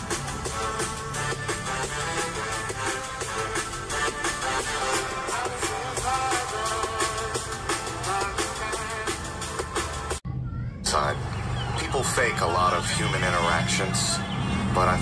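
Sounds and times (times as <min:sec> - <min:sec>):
electronic dance music on laptop speakers: 0:00.0 - 0:10.2.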